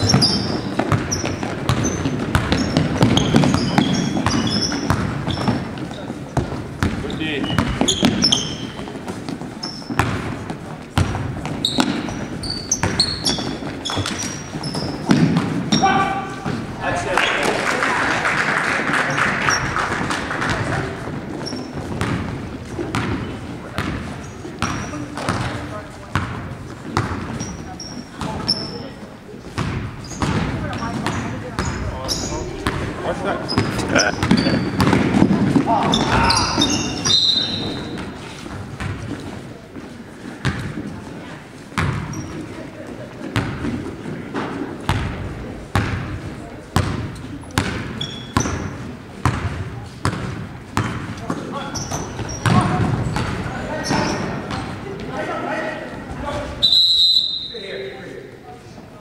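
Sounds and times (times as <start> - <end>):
basketball bouncing on hardwood floor: 0.0 - 5.8, 6.4 - 15.6, 21.5 - 24.0, 33.6 - 36.7, 41.8 - 42.2, 44.9 - 46.1, 46.8 - 51.1, 51.9 - 53.4
voices echoing in a gym: 0.0 - 59.0
short high squeaks: 11.6 - 15.1, 35.9 - 38.0, 48.0 - 48.4.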